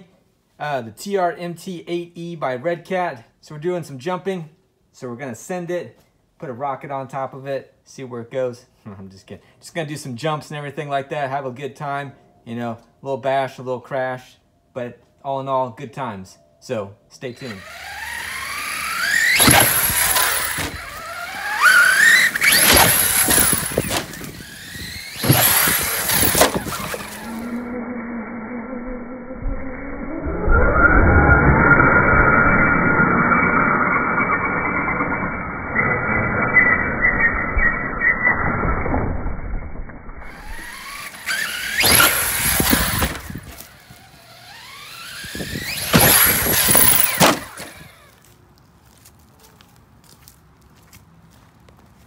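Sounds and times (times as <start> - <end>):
electric motor whining in sweeps: 17.4 - 28.0, 40.2 - 48.2.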